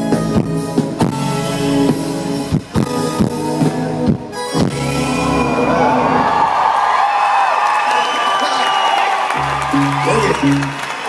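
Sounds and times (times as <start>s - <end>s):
low bass notes: 0.0s - 6.5s, 9.4s - 10.8s
crowd cheering and whooping: 4.8s - 11.0s.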